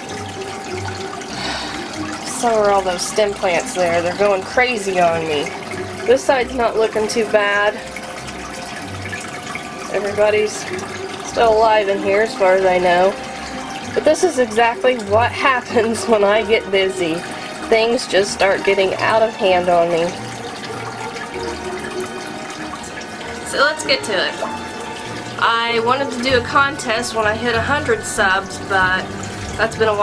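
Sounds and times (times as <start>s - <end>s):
aquarium water trickling: 0.0s - 30.0s.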